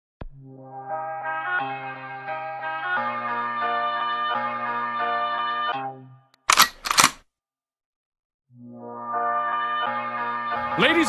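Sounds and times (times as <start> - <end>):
music: 0.2 - 6.4, 8.5 - 11.0
camera shutter clicks: 6.4 - 7.2.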